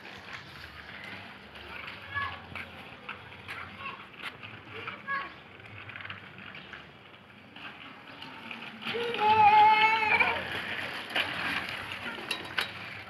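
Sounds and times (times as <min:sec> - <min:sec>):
child's high-pitched call: 0:09.0 - 0:10.4.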